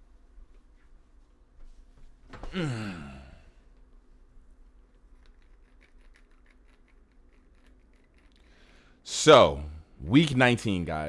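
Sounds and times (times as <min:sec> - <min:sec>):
man sighing: 0:02.4 - 0:03.6.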